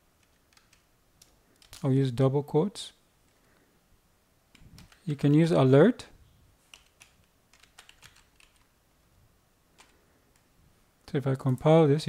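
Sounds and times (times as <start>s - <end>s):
computer keyboard keystrokes: 0.2s - 1.8s, 6.7s - 8.7s, 9.8s - 10.5s.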